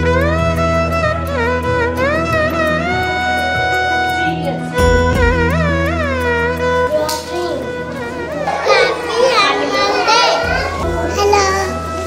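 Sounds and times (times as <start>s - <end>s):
background music: 0.0s - 12.0s
young child speaking: 6.9s - 12.0s.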